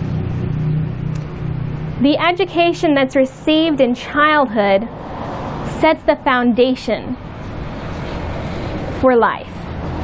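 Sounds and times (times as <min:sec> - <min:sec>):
low engine-like hum: 0:00.0 - 0:10.0.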